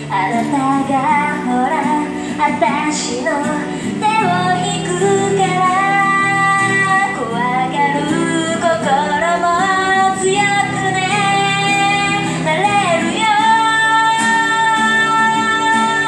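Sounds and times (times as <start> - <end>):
acoustic guitar: 0.0 - 16.0
woman singing pop song: 0.0 - 16.0.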